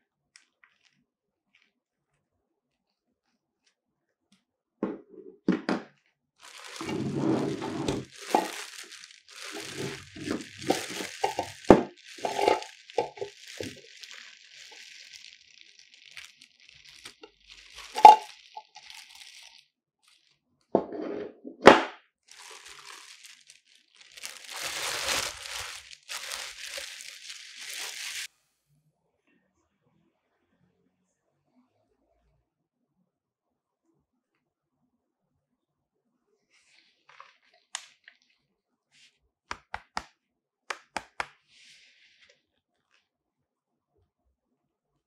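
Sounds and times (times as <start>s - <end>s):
plastic bag crinkling: 6.4s - 20.4s, 22.3s - 28.3s.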